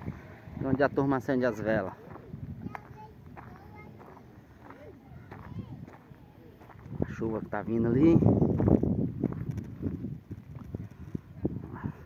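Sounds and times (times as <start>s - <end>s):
faint voices talking: 0.0s - 8.6s
footsteps on gravel: 1.5s - 11.3s.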